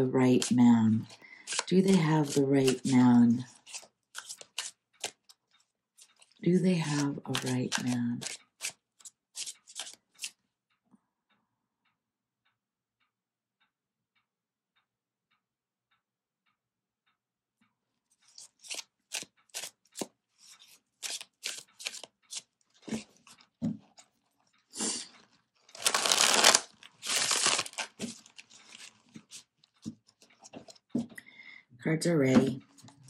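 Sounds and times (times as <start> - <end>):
cards riffle-shuffled: 0.4 - 5.4, 6.0 - 10.4, 18.3 - 23.0, 25.7 - 29.5.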